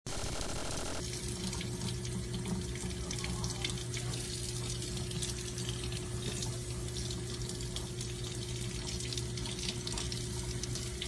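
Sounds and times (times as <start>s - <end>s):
steady low hum: 0.0s - 1.0s.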